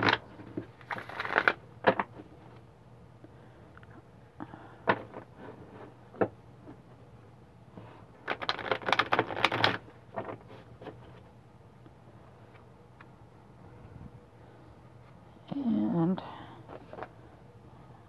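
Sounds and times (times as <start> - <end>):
cards rustling and clicking: 0.0 - 2.2, 8.2 - 11.2.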